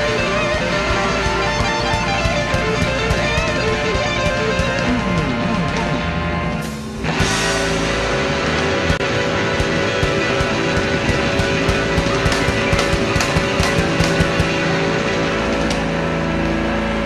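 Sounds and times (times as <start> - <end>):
drum hits: 0.0 - 6.0, 6.7 - 15.9
blues band playing: 0.0 - 17.0.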